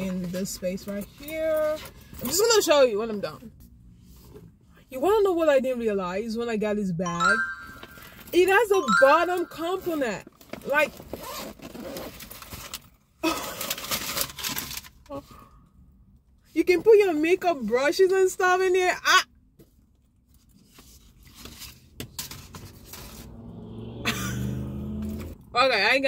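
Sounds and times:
zipper being pulled open: 11.1s - 12.5s.

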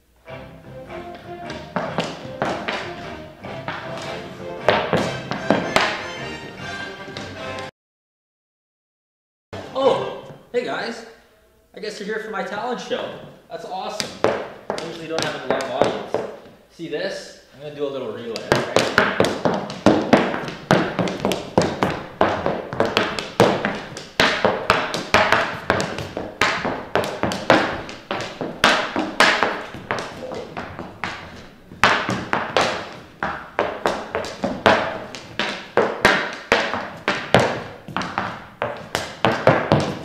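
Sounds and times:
hockey stick tapping ball on wood floor: 1.1s - 6.1s, 14.0s - 16.6s, 18.4s - 40.0s.

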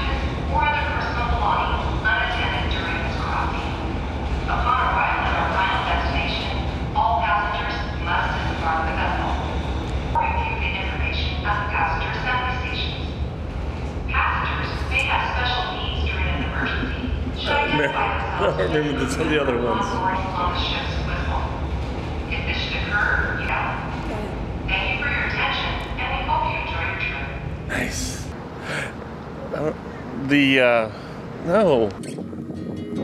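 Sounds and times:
announcement over loudspeakers: 14.1s - 21.6s, 22.3s - 28.9s.

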